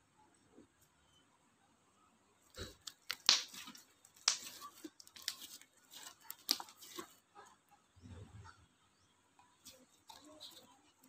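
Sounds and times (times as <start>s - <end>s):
sticky slime popping: 2.6s - 7.1s.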